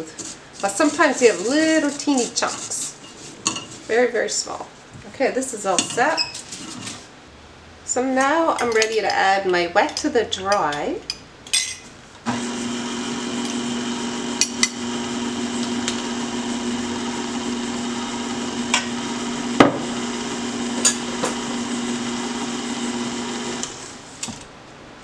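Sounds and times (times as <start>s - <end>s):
stand mixer motor running: 12.3s - 23.9s.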